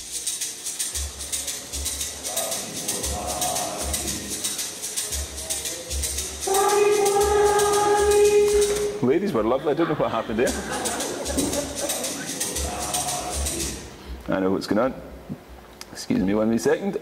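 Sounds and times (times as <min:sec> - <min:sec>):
shaker rhythm: 0:00.0 - 0:09.4, 0:10.3 - 0:14.2
recorded group singing: 0:01.5 - 0:09.0, 0:10.5 - 0:14.0.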